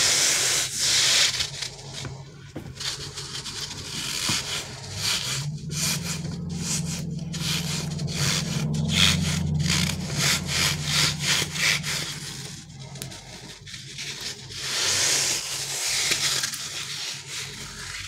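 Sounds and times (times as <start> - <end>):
hands rubbing rubber squishy toy: 0.0 - 18.0
low steady hum: 0.0 - 18.0.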